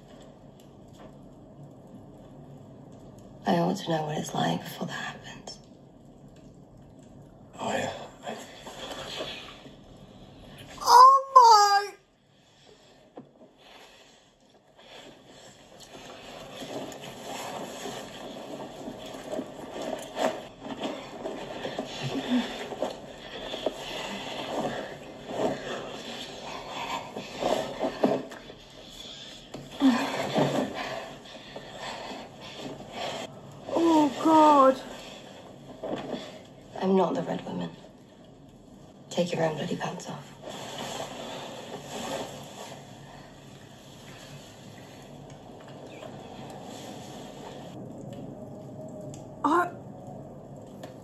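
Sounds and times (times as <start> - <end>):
rustling: 12.3 - 39.0, 39.7 - 48.0.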